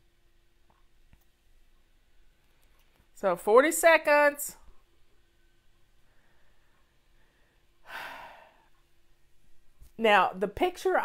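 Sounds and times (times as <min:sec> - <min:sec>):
faint steady hum: 0:00.0 - 0:11.0
person breathing close to microphone: 0:06.0 - 0:08.8.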